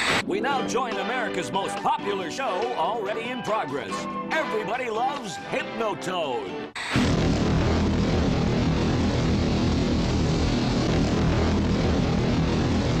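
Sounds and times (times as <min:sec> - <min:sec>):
loud electronic droning hum: 0:06.9 - 0:13.0.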